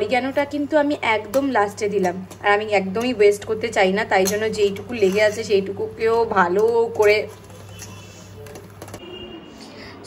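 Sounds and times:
woman speaking: 0.0s - 7.4s.

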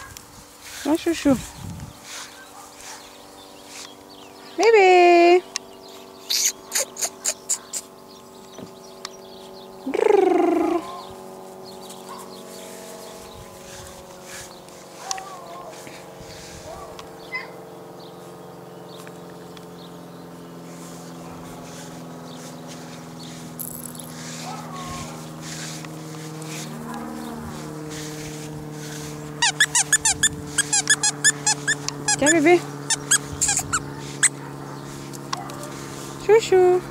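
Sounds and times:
steady low hum: 0.0s - 36.9s
mouth kissing clicks: 6.3s - 7.9s
puppy yipping: 6.3s - 7.9s, 16.7s - 17.6s, 29.4s - 32.3s, 32.9s - 34.6s.

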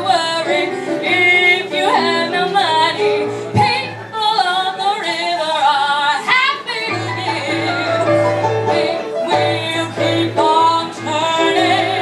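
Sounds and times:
piano accompaniment: 0.0s - 12.0s
woman singing: 0.0s - 12.0s.

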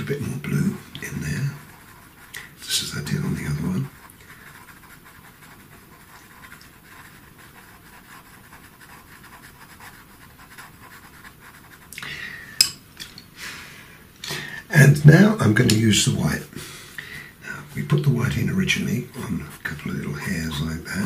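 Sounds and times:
pencil scratching on paper: 0.0s - 11.9s, 17.6s - 21.0s.

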